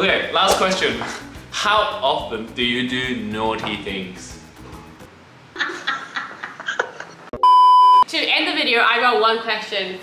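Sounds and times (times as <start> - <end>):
person laughing: 5.6 - 7.3
censor bleep tone: 7.4 - 8.1.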